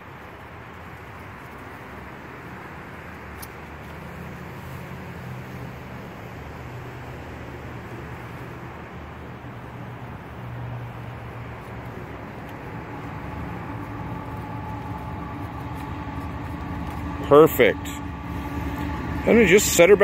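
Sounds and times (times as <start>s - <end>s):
faint steady tones: 10.1s - 20.0s
low mechanical rumble with hum: 10.9s - 20.0s.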